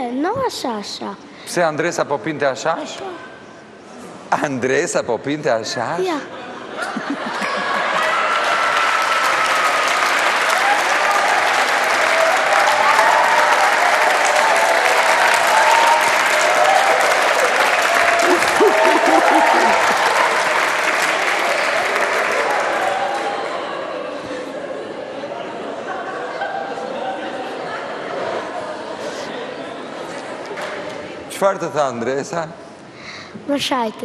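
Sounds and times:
audience applauding: 7.2s - 24.1s
voices: 18.0s - 20.4s.

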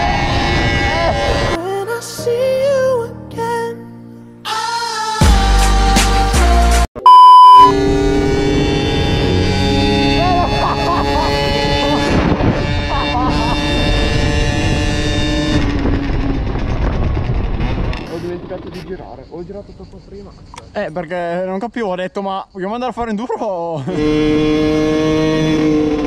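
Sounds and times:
test tone beep: 7.0s - 7.7s
motorcycle engine running: 8.1s - 18.8s.

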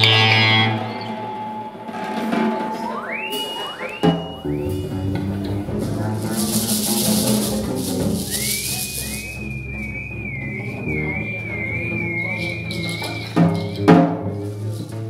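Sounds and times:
theremin with vibrato: 0.0s - 1.9s, 8.3s - 13.4s
high hiss: 6.2s - 9.5s.

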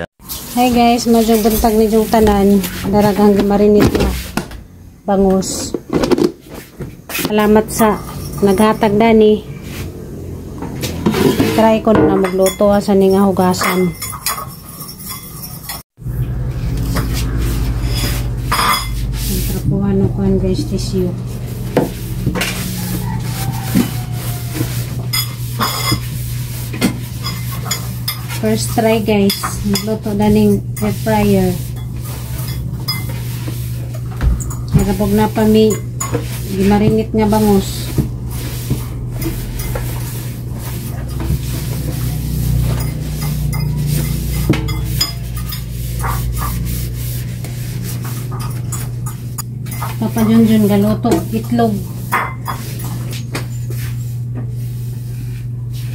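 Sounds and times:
air fryer basket being wiped: 0.2s - 4.4s, 16.3s - 32.5s, 34.8s - 55.9s.

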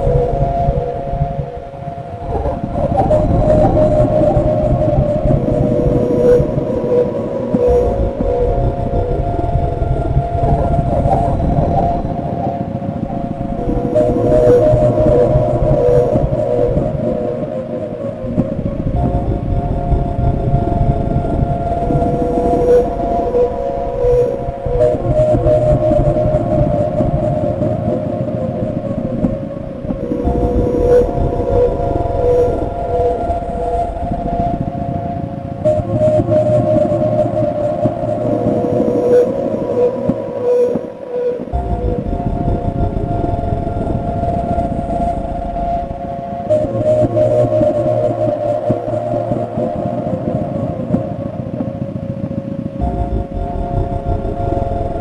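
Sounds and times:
experimental electronic drone music: 0.0s - 55.0s.

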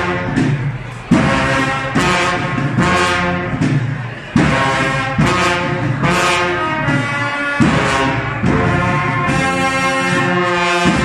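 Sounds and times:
bugle band brass chords: 0.0s - 11.0s.

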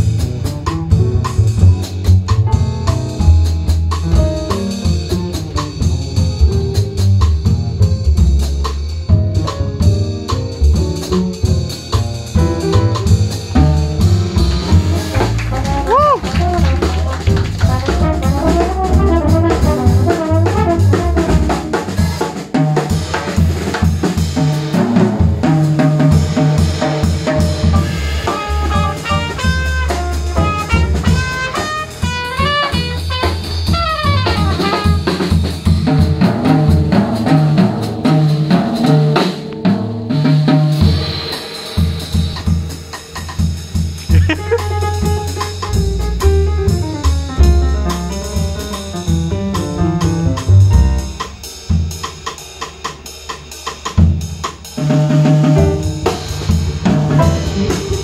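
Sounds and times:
plucked double bass: 0.0s - 22.3s, 24.8s - 41.0s, 44.0s - 51.4s, 55.4s - 58.0s
drum kit with cymbals: 0.0s - 58.0s
trumpet phrases: 15.0s - 21.6s, 28.3s - 35.0s.

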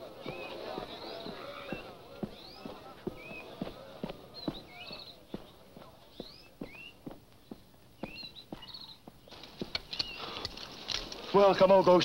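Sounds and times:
bird whistled chirps and trills: 0.1s - 10.4s.

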